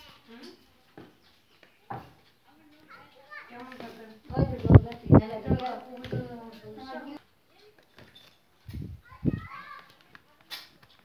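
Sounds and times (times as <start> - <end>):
child's high voice: 8.7 - 10.0.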